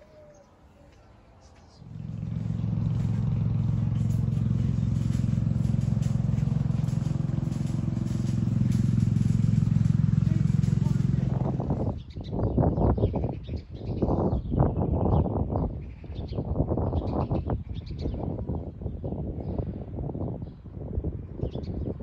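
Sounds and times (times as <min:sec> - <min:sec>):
engine humming: 0:00.0 - 0:12.1.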